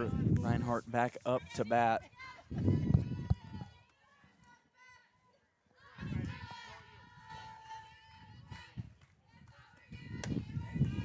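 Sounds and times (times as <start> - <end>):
wind rumbling on microphone: 0.0 - 1.7, 2.4 - 3.8, 6.0 - 11.0
distant voices calling out and chanting: 0.0 - 11.0.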